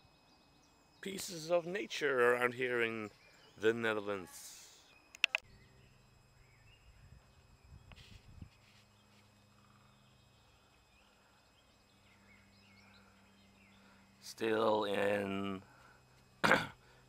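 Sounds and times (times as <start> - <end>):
faint bird chirps: 0.0 - 17.0
steady low hum: 0.0 - 17.0.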